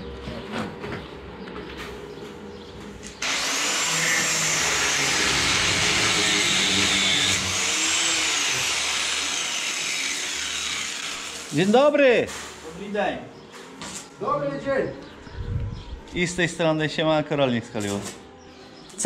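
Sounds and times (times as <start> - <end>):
angle grinder cutting steel: 3.2 - 11.8.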